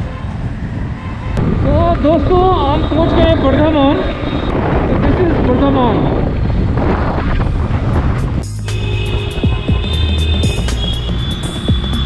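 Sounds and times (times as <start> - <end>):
wind buffeting microphone: 0.0 - 10.7
motorcycle rumble: 0.0 - 12.0.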